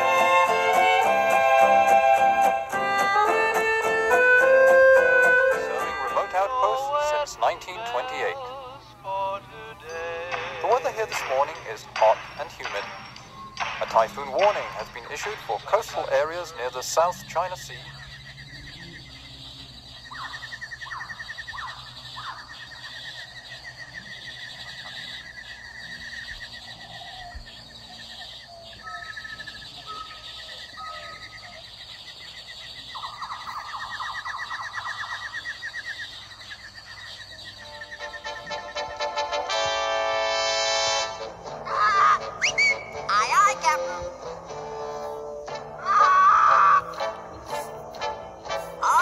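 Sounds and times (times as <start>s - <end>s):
music: 0.0s - 16.7s, 37.6s - 49.0s
rapid trilling chirp: 2.6s - 39.1s, 41.1s - 49.0s.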